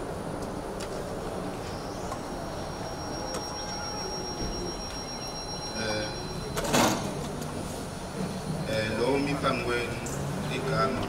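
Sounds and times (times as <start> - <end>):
steady background noise: 0.0 - 11.0
faint voices: 0.4 - 11.0.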